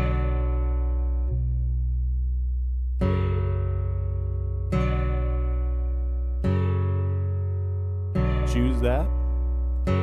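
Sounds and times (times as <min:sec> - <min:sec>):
slow held chords: 0:00.0 - 0:10.0.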